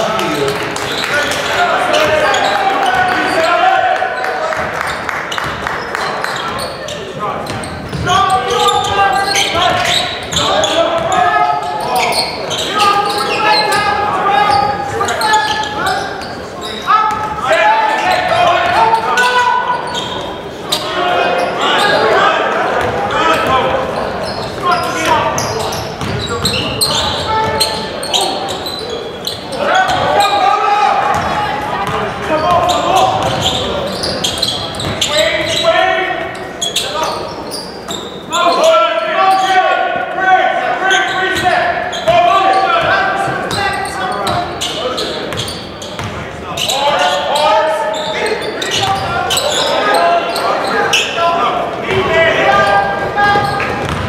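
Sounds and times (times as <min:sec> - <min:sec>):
voices calling out: 0:00.0 - 0:54.0
basketball bouncing on hardwood floor: 0:53.8 - 0:54.0.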